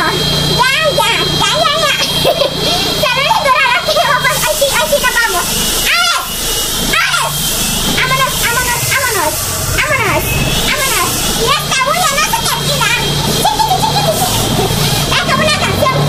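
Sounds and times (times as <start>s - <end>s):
woman talking animatedly: 0.0s - 6.3s, 6.9s - 16.0s.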